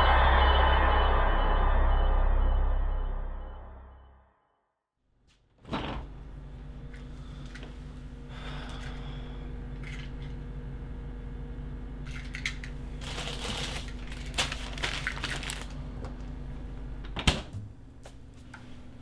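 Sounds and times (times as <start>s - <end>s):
refrigerator humming: 5.4s - 19.0s
wrapper rustling and crinkling: 13.0s - 15.8s.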